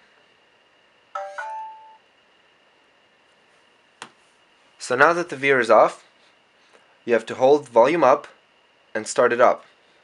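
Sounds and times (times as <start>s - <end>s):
two-note electronic phone chime: 1.2s - 2.0s.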